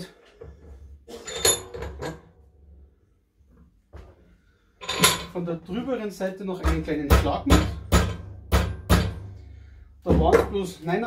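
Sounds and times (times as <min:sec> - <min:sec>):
metal clanks at a vise: 0:01.1 - 0:02.3, 0:04.8 - 0:05.4.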